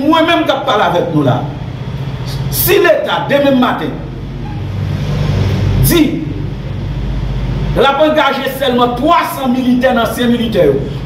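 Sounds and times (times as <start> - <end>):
steady low engine-like hum: 0.0 - 11.0
man talking: 2.5 - 4.1, 7.8 - 11.0.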